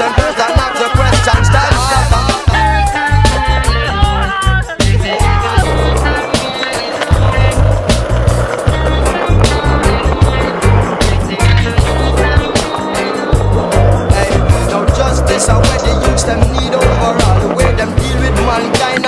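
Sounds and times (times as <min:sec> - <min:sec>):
reggae music: 0:00.0 - 0:19.0
skateboard wheels on concrete: 0:00.0 - 0:19.0.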